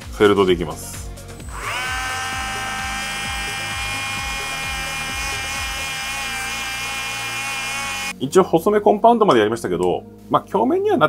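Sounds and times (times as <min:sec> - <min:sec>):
rotary tool high whine: 0:01.4 - 0:08.1.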